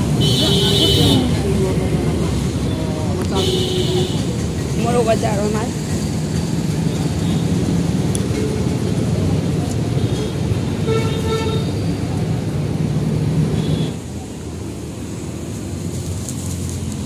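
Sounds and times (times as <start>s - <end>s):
crowd voices: 0.0s - 6.8s
road traffic rumble: 0.0s - 17.0s
vehicle horn: 0.2s - 1.3s, 3.4s - 4.2s, 10.1s - 11.8s.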